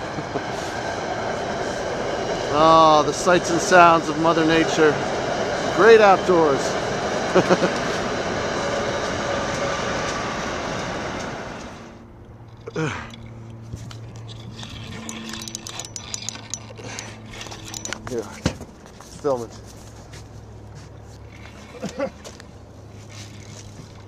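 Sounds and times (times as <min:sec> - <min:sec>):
train wheels rushing on rails: 0:00.0 - 0:12.0.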